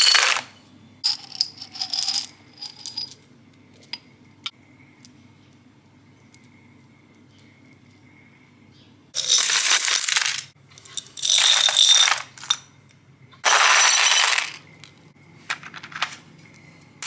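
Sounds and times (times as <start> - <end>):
glass tiles clattering into tub: 0.0 - 0.4, 9.2 - 12.6, 13.4 - 14.6.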